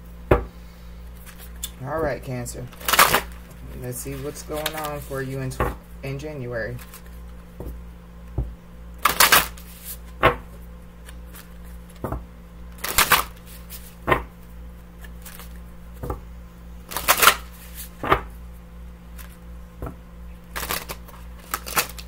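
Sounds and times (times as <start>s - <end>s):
cards riffling and slapping: 1.1s - 1.8s, 2.7s - 5.2s, 6.8s - 7.7s, 9.0s - 10.3s, 11.0s - 14.2s, 15.0s - 16.2s, 16.9s - 18.2s, 19.1s - 19.4s, 20.5s - 22.0s.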